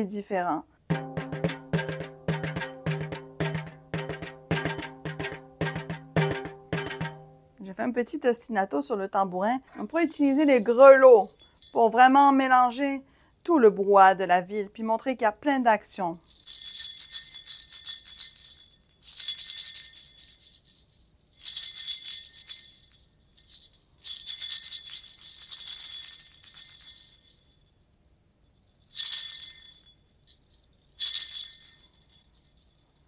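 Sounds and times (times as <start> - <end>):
jingle bells shaken: 0.9 - 7.5, 9.7 - 12.6, 16.2 - 27.7, 28.6 - 33.0.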